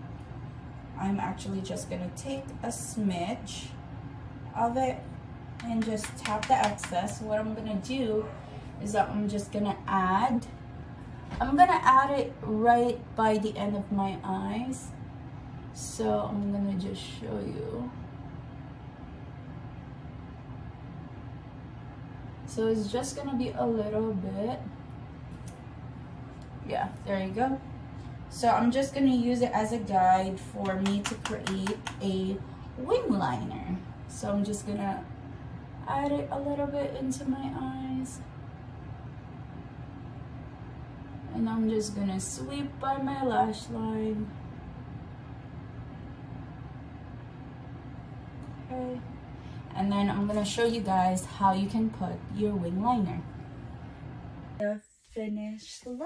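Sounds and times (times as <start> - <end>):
low room rumble: 0.0 - 56.0.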